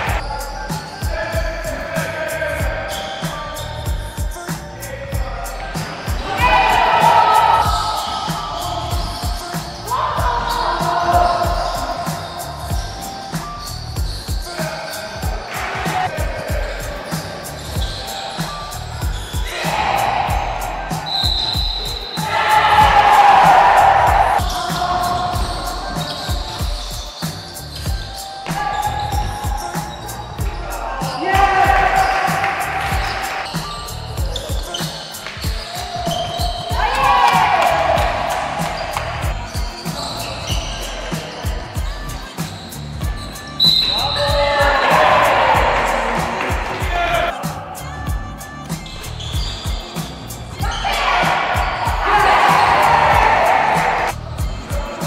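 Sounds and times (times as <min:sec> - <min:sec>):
basketballs bouncing on gym floor: 0:30.4 - 0:33.6.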